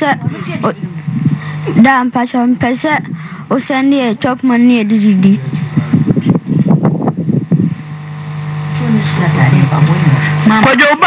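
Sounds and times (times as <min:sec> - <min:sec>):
person speaking: 0:00.0 - 0:06.0
steady low hum: 0:00.0 - 0:11.0.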